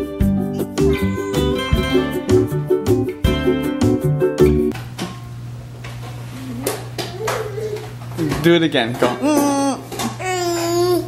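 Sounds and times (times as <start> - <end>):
toddler humming: 0.6 - 1.9, 7.1 - 8.0, 9.2 - 11.0
low background hum: 4.7 - 11.0.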